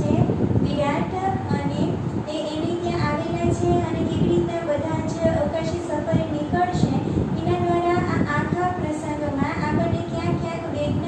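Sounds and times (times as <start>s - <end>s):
woman talking: 0.0s - 11.0s.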